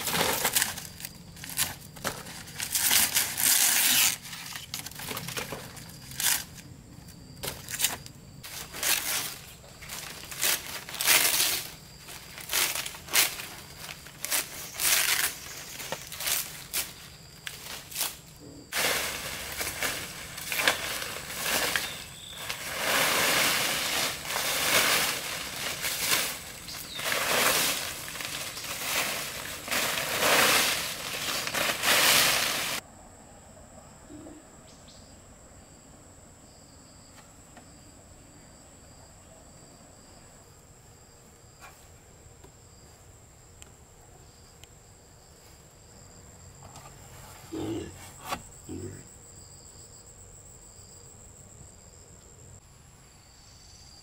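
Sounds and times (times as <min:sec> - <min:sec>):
blade cutting leaves: 0:00.0 - 0:06.7, 0:07.4 - 0:32.8
dry palm leaves rustling: 0:00.0 - 0:32.8
forest insects chirring: 0:00.0 - 0:54.0.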